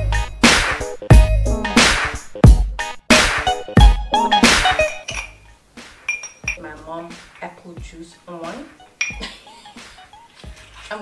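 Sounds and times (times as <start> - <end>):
glass tumbler clinking: 4.9 - 5.5, 6.1 - 6.7, 9.0 - 9.3.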